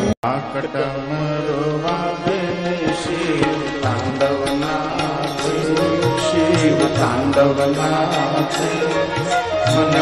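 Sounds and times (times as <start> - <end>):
devotional chant-like singing: 0.0 - 10.0
indian instruments playing: 0.0 - 10.0.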